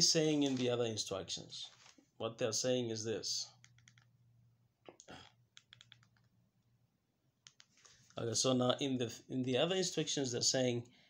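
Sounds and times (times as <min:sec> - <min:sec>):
faint clicks: 0:03.6 - 0:04.2, 0:04.8 - 0:06.4, 0:07.4 - 0:08.2.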